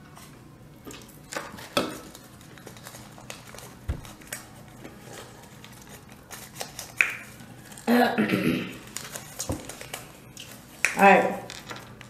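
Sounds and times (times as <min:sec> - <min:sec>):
soft thump: 0:03.9 - 0:04.2
napkins rustling: 0:08.8 - 0:12.0.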